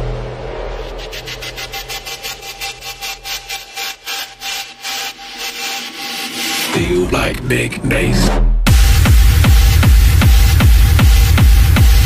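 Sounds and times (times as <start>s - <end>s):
repeating scraping noise hit: 0.0s - 6.9s
techno bass: 0.0s - 12.0s.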